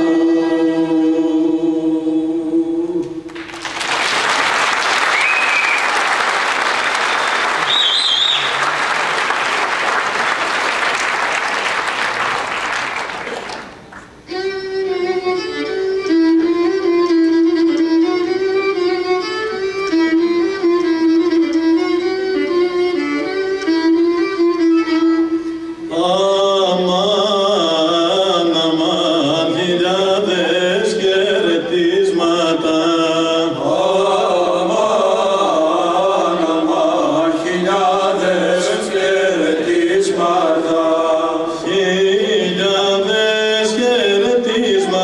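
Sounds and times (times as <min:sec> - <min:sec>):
audience applauding: 0:03.3 - 0:14.2
whistles: 0:04.6 - 0:06.2, 0:07.0 - 0:08.9.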